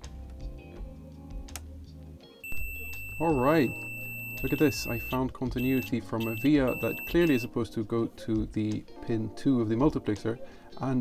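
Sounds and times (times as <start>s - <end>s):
multimeter high-pitched beep: 2.4s - 7.5s.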